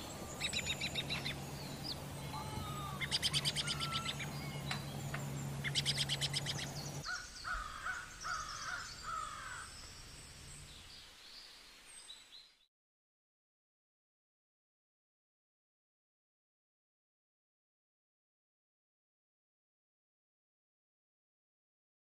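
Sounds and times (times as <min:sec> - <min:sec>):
bird trilling: 0:00.0 - 0:09.8
steady low hum: 0:00.0 - 0:10.8
lower slurred bird calls: 0:00.0 - 0:12.5.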